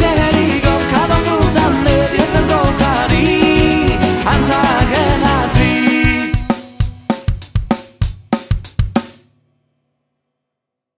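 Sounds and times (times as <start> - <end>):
drum and cymbal hits: 0.0 - 9.7.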